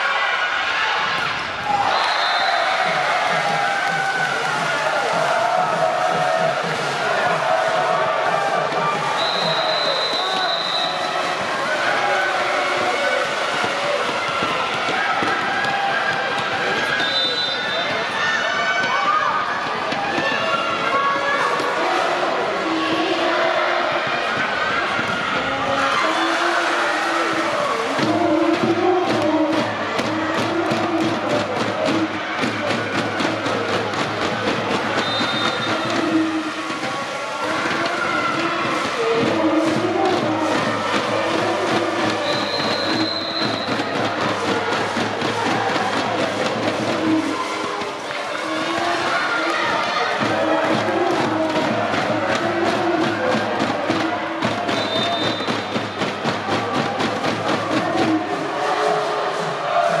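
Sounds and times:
crowd chanting over a beat: 0.0 - 60.0
referee whistle blasts: 1.8 - 2.7, 9.2 - 11.2, 17.0 - 18.0, 35.0 - 35.9, 42.2 - 43.9, 54.7 - 55.8.

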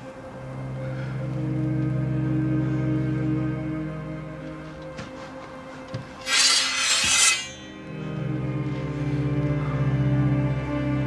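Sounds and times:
low orchestral strings: 0.0 - 11.0
sword drawn from scabbard: 6.2 - 7.8.

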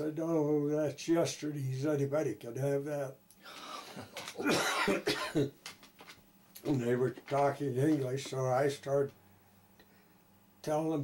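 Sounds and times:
elderly man coughing: 3.9 - 5.6.

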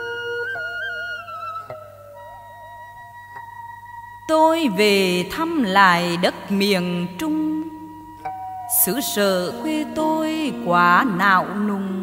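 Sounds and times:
held melody notes with vibrato: 0.0 - 12.0.

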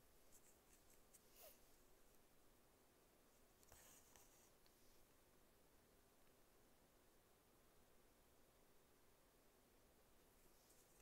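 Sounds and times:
faint squeak: 0.8 - 1.7.

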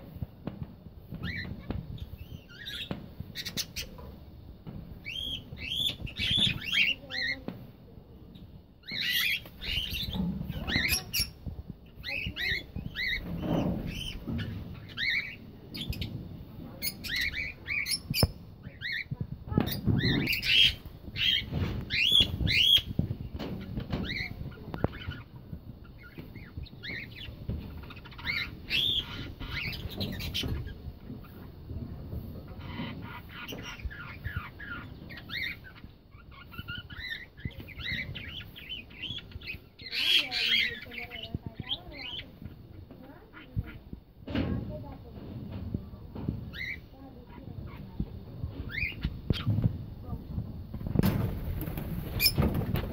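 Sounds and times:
parrots chirping and squawking: 1.2 - 4.2, 5.0 - 7.5, 8.8 - 16.2, 16.8 - 31.5, 32.5 - 43.9, 46.5 - 49.6, 52.0 - 52.9.

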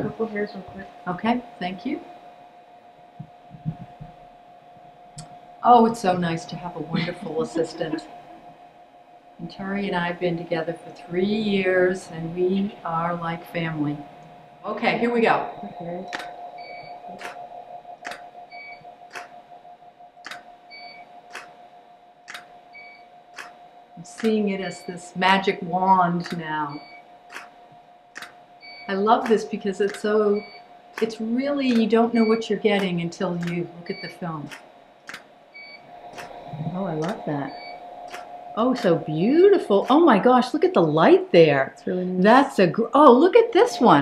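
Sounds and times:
steady high hum: 0.0 - 44.0
soft low thuds: 3.1 - 5.4
short electronic beep: 37.5 - 38.3.

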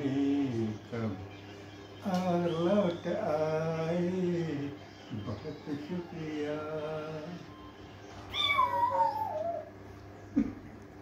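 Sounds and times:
cat meowing: 8.3 - 9.6.

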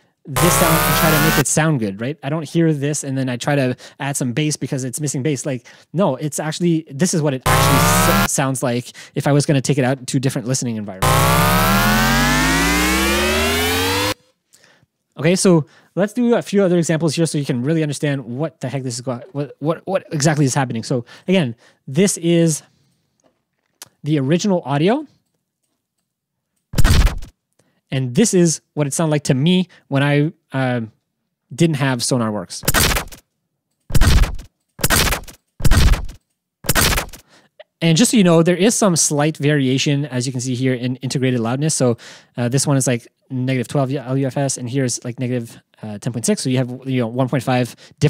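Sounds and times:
glitch sound effect hits: 0.4 - 1.4, 7.5 - 8.3, 11.0 - 14.2, 26.8 - 27.3, 32.7 - 33.2, 33.9 - 37.2
tones gliding upward: 0.4 - 1.4, 7.5 - 8.3, 11.0 - 14.2.

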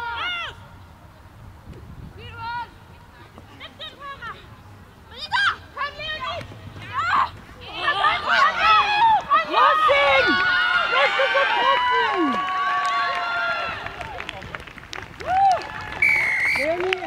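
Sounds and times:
crowd shouting and cheering: 5.4 - 14.4.

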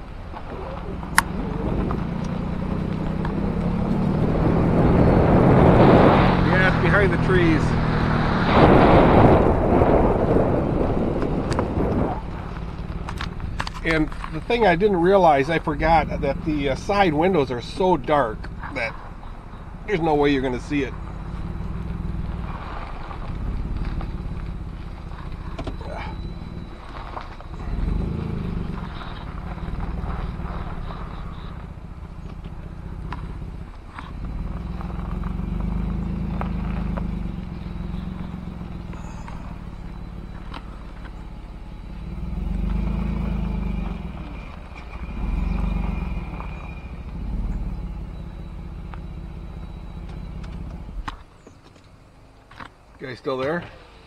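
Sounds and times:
car engine rumbling: 0.0 - 54.0.

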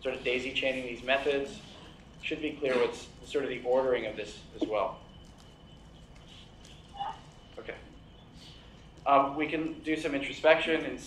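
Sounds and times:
faint high-pitched hum: 0.0 - 11.0.

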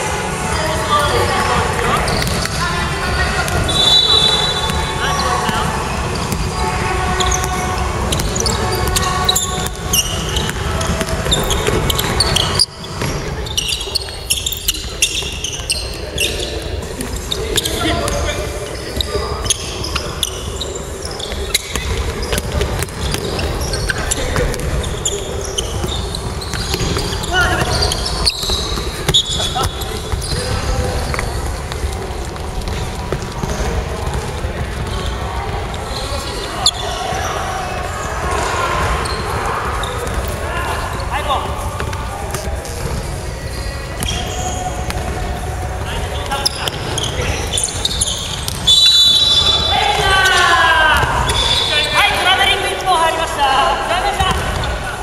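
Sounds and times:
players' voices echoing: 0.0 - 55.0
basketball bouncing on wooden floor: 54.2 - 54.7.

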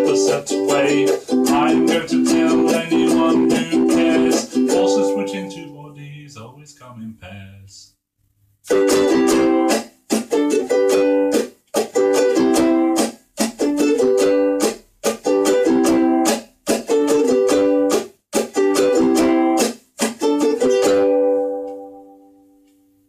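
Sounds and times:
strummed acoustic blues chords: 0.0 - 7.1, 8.6 - 22.4.

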